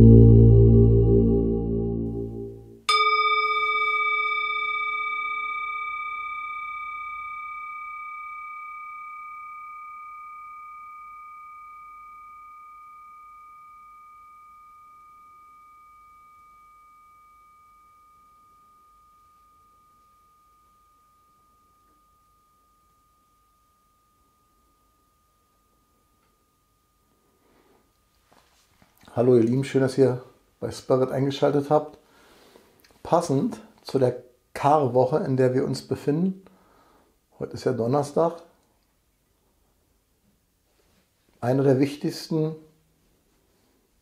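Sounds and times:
singing bowl ringing: 0:00.0 - 0:28.6
striker hitting singing bowl: 0:02.9 - 0:26.9.

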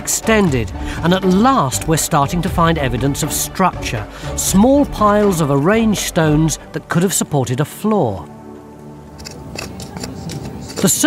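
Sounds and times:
metal trowel scraping soil: 0:09.1 - 0:11.0.

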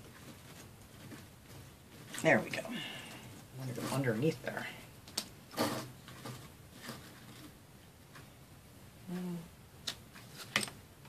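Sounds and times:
low humming voice: 0:09.0 - 0:09.6.

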